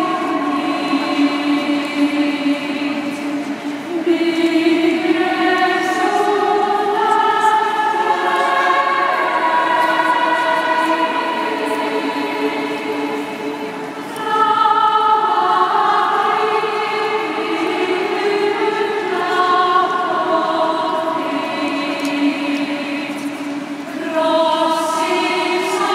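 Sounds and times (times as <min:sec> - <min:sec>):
choir singing sustained chords: 0:00.0 - 0:25.9.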